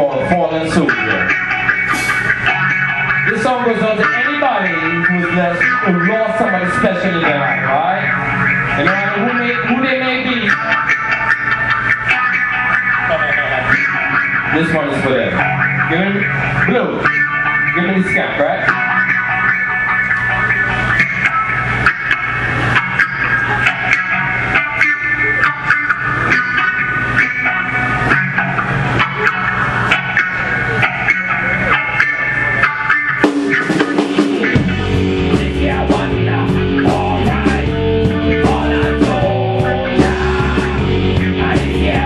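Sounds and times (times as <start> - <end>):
bass: 0.0 - 42.0
drums: 0.0 - 42.0
electric guitar lines: 0.0 - 42.0.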